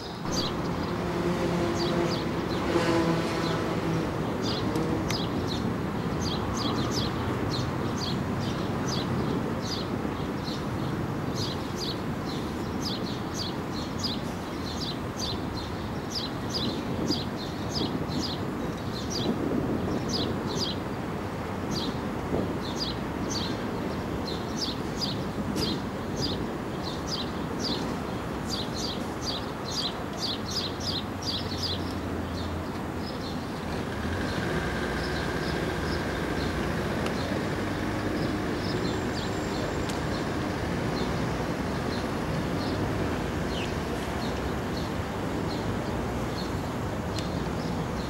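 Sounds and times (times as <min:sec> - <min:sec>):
small birds chirping: 0:04.4 - 0:20.9, 0:22.6 - 0:48.0.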